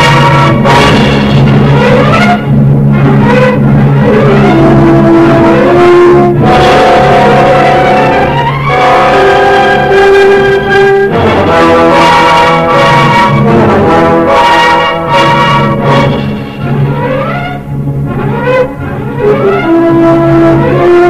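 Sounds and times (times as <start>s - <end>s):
orchestral horror score with brass: 0.0s - 21.0s.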